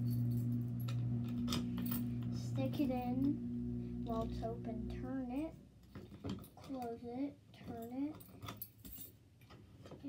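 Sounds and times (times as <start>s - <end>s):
steady low hum: 0.0s - 6.0s.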